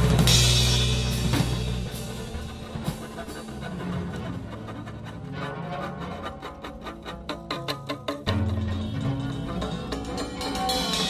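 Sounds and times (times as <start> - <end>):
bass holding low notes: 0.0 - 6.9.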